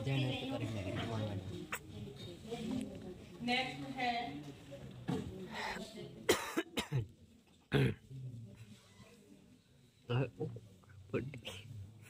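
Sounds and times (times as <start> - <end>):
person coughing: 6.3 - 7.1.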